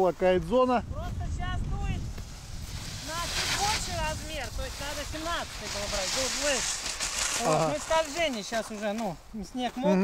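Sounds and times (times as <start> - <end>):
wind buffeting microphone: 0.0 - 6.8
brief hiss: 2.0 - 8.3
people talking: 3.0 - 6.6, 7.4 - 10.0.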